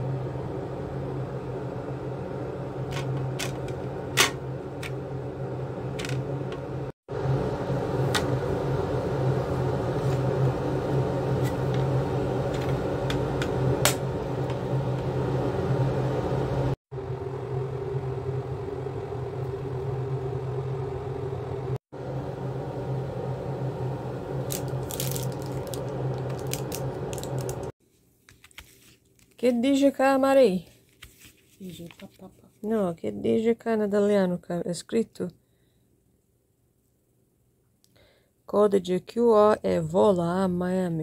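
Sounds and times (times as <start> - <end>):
low mechanical hum: 0.0 - 29.4.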